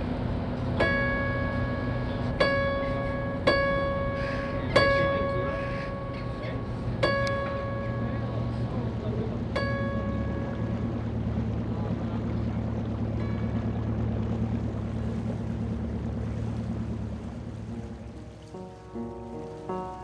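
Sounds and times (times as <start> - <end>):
boat engine drone: 0.0 - 20.0
churned water rushing: 0.0 - 20.0
piano notes: 0.0 - 20.0.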